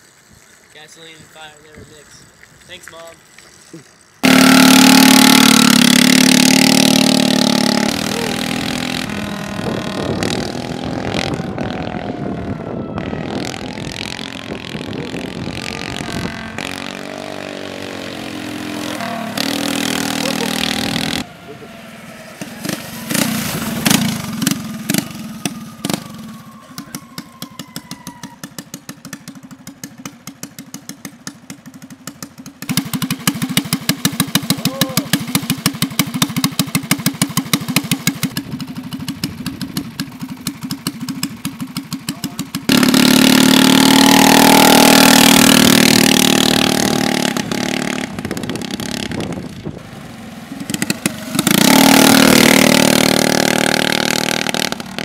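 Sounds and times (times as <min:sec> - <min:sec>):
small gasoline engine running: 0:04.0 - 0:10.5, 0:19.4 - 0:21.6, 0:28.4 - 0:55.0.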